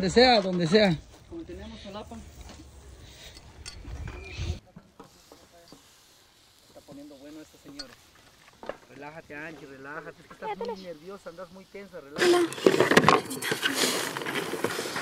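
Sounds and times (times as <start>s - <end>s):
wind rumble on microphone: 3.6s - 4.6s.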